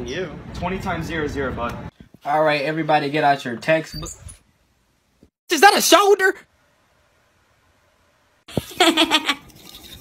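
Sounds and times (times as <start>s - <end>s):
person laughing: 8.5s - 9.5s
salt shaker rattling: 9.4s - 10.0s.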